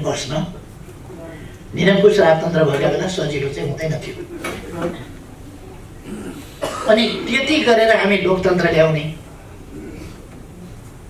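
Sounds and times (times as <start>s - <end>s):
man speaking: 1.7s - 5.0s, 6.1s - 9.2s
man coughing: 6.0s - 7.5s.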